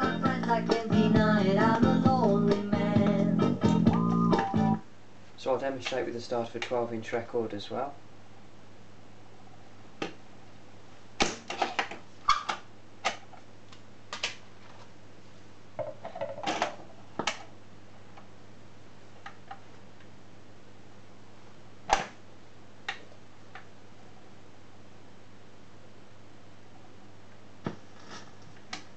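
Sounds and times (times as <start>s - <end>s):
low steady hum: 0.0s - 28.9s.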